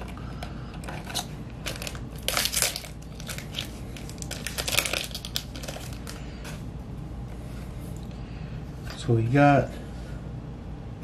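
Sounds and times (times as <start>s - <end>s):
foil wrapper crinkling: 0.8s - 6.3s.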